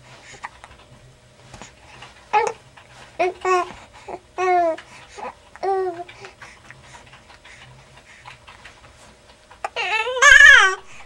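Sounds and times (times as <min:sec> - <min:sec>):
baby cooing: 0:09.6 - 0:10.9.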